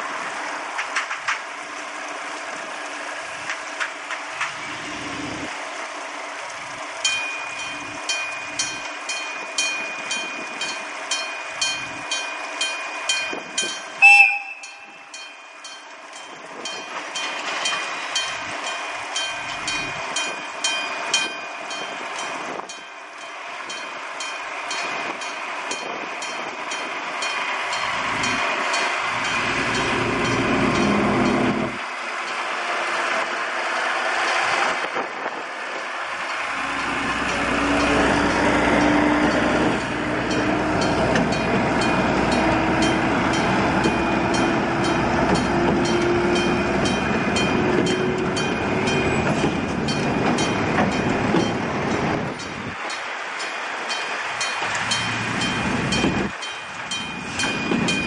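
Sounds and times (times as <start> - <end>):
boxcars rolling over track: 0.0 - 58.0
diesel locomotive engine: 0.0 - 58.0
level crossing warning bell: 6.9 - 32.5, 36.1 - 58.0.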